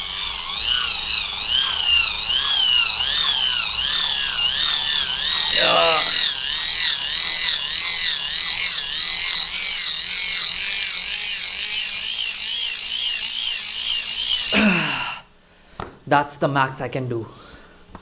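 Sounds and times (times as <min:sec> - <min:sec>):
motor generator whine: 0:00.0 - 0:15.0.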